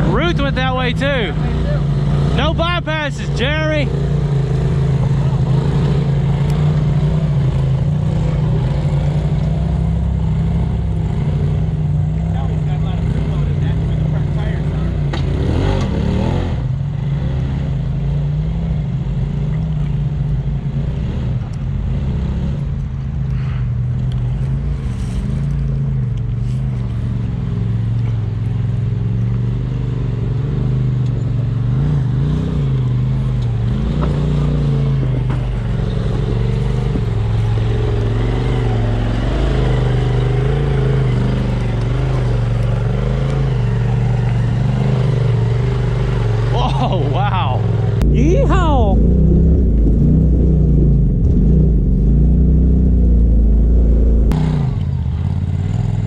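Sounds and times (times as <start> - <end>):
utility vehicle engine running: 0.0 - 56.0.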